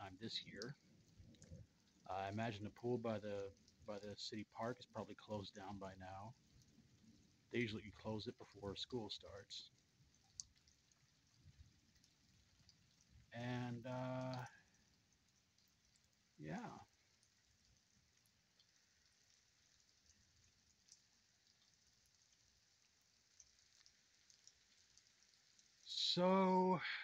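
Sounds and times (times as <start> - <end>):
faint rain hiss: 0.0 - 27.0
man humming: 13.4 - 14.5.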